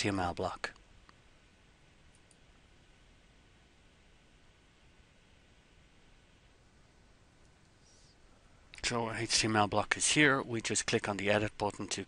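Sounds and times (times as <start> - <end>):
faint room hiss: 0.0 - 12.0
computer mouse clicks: 2.1 - 2.4.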